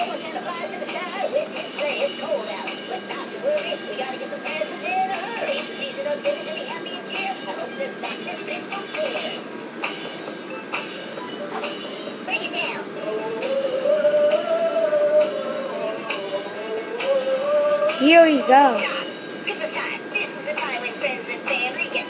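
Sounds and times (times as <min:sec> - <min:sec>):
tinny recorded song: 0:00.0 - 0:22.0
toy singing through speaker: 0:00.0 - 0:22.0.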